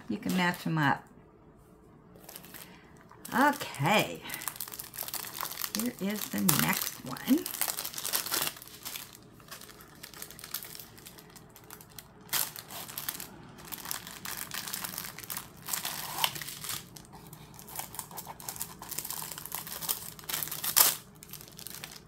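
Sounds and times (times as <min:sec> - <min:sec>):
packaging rustling and crinkling: 0:02.2 - 0:22.0
sharp packaging crackle: 0:02.2 - 0:22.0.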